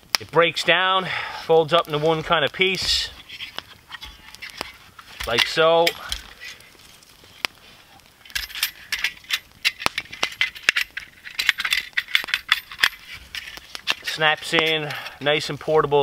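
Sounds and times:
light metallic clicks and rattles: 0:08.2 - 0:15.3.

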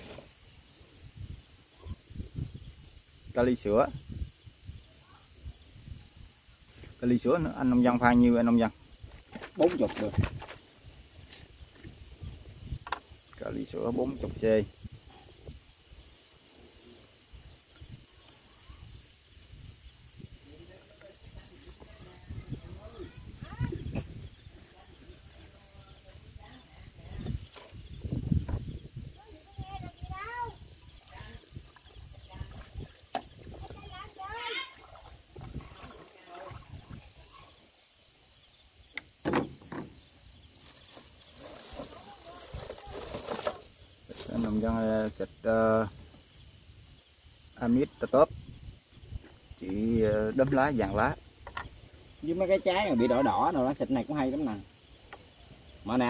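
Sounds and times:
steady low hiss: 0:00.0 - 0:56.0.

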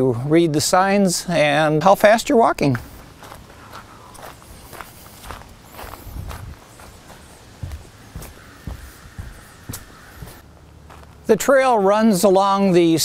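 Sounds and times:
footsteps on gravel: 0:02.8 - 0:11.3.

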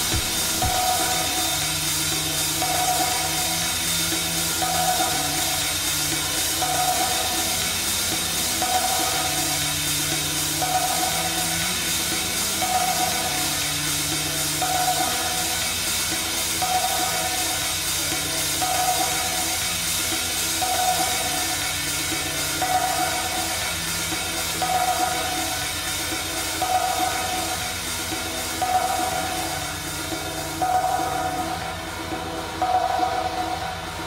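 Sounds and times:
bass line: 0:00.0 - 0:19.6
drums: 0:00.0 - 0:34.0.

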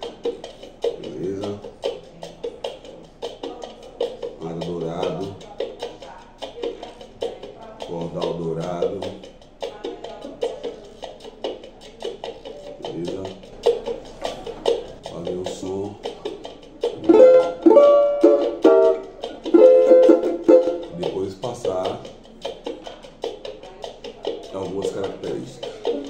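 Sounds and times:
banjo strummed and picked: 0:16.8 - 0:23.0.

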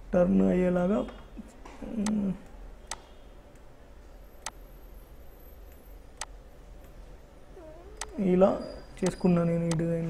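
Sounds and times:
computer mouse click: 0:08.0 - 0:08.2.

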